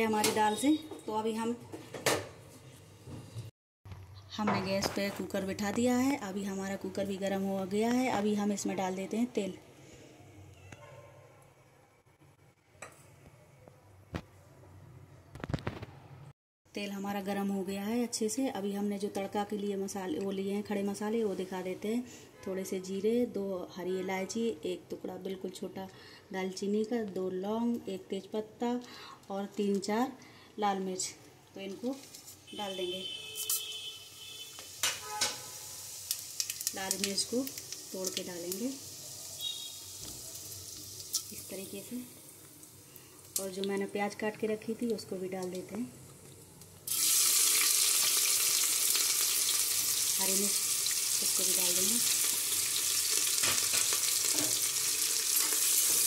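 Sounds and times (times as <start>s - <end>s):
crackles and pops: 15.3s - 16.0s, 36.0s - 38.8s
spices sizzling in hot oil: 31.6s - 56.0s.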